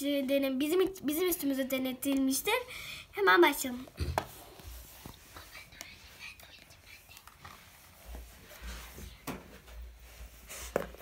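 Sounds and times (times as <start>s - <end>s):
soft clicks and rubbing: 4.2s - 9.8s.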